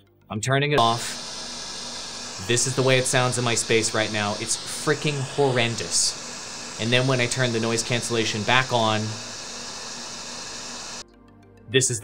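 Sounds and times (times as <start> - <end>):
air conditioning: 0.8 - 11.0
overhead fan: 0.8 - 11.0
white noise hiss: 0.8 - 11.0.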